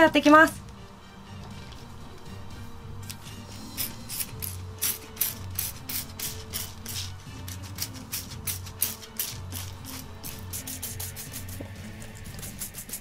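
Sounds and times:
spray bottle spritzing: 3.7s - 13.0s.

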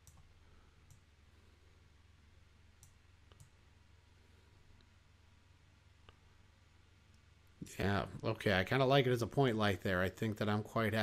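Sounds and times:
computer mouse clicks: 0.0s - 1.1s, 2.8s - 3.6s
low steady hum: 0.0s - 11.0s.

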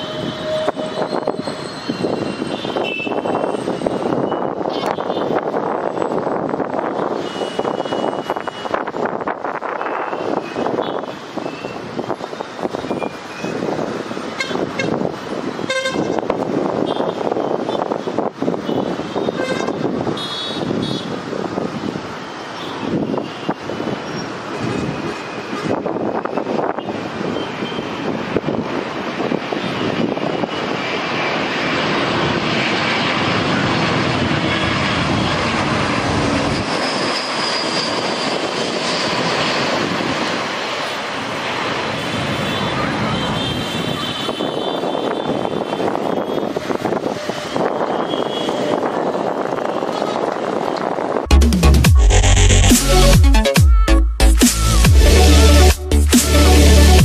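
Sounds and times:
city traffic: 0.0s - 57.0s
jet airliner rushing and whining: 0.0s - 57.0s.

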